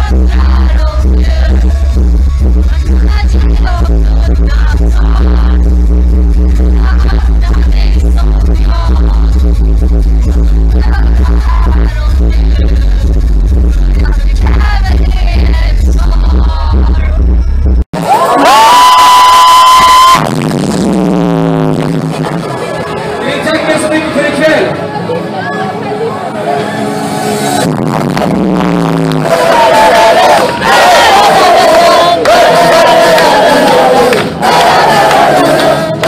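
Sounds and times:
concert crowd singing along: 0:00.0 - 0:01.9, 0:29.1 - 0:36.0
electronic dance track: 0:00.0 - 0:24.9, 0:26.7 - 0:36.0
live song with heavy bass and singer: 0:00.0 - 0:36.0.

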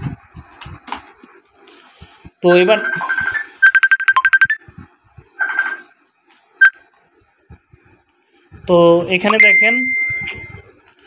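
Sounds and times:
short electronic beeps: 0:02.8 - 0:04.8, 0:05.4 - 0:05.9, 0:09.3 - 0:10.6.

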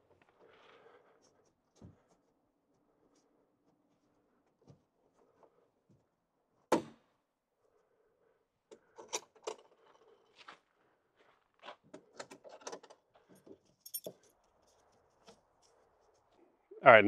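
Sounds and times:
light metallic jingles: 0:13.2 - 0:16.3.

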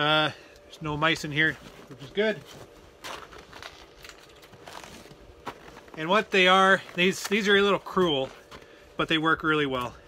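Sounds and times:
canvas jacket rustling: 0:01.4 - 0:08.8.

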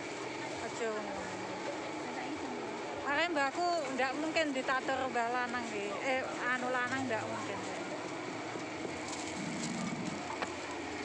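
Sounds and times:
market hubbub: 0:00.0 - 0:11.0.

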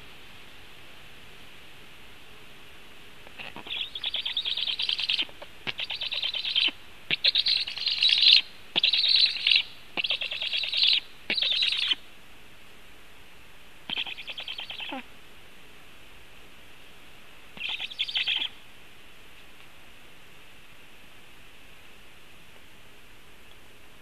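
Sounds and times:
young storks begging calls: 0:03.3 - 0:12.0, 0:13.9 - 0:15.1, 0:17.6 - 0:18.6.

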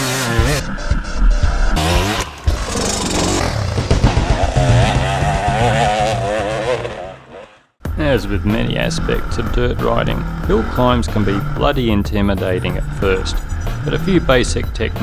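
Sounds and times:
dirt bike engine revving: 0:00.0 - 0:00.6, 0:01.8 - 0:07.7, 0:08.4 - 0:15.0
background music: 0:00.0 - 0:07.1, 0:07.8 - 0:15.0.

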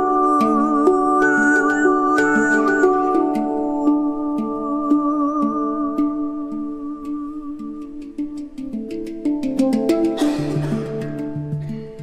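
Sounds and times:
overtone singing drone: 0:00.0 - 0:06.0
handpan notes: 0:00.0 - 0:12.0.

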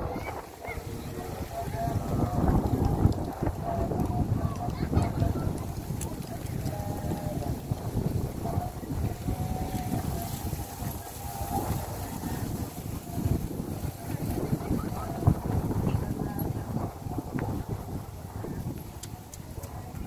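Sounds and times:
faint distant voices: 0:00.0 - 0:20.0
wind rumbling on microphone: 0:00.0 - 0:20.0.

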